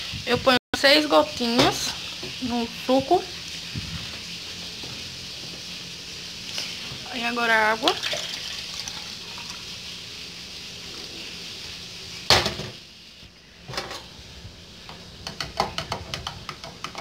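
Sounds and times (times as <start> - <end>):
water pouring into cup: 7.9 - 9.7.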